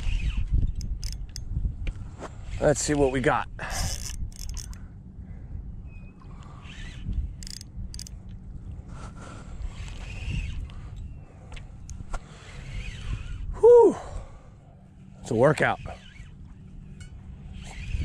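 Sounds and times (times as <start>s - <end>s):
fishing reel clicking: 0.0s - 1.5s, 3.7s - 4.8s, 6.7s - 8.2s
wind rumbling on microphone: 0.0s - 14.6s, 15.6s - 18.0s.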